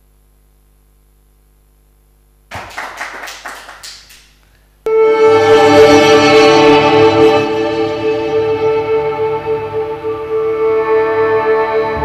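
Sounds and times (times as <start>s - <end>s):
audience applause: 2.5s - 4.2s
orchestral music with strings: 4.9s - 12.0s.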